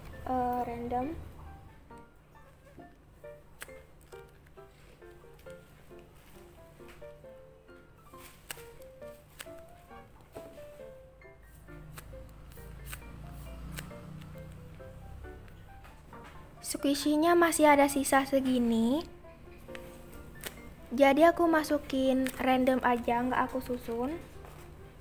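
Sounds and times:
background music melody: 0.0 - 25.0
paper squishies crinkling: 8.1 - 10.9.

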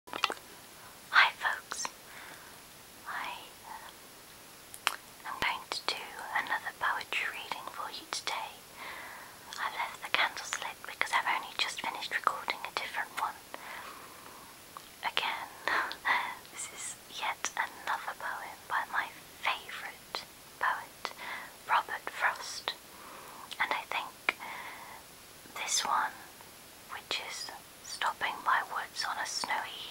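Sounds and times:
woman whispering: 1.1 - 1.9, 3.0 - 3.9, 5.2 - 8.7, 9.5 - 13.7, 15.0 - 22.8, 23.5 - 25.0, 25.6 - 26.3, 26.9 - 29.9.

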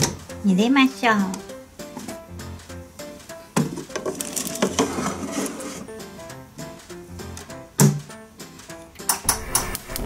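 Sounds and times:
light background music: 0.0 - 10.0
toy baking tray scraping: 3.9 - 6.0.

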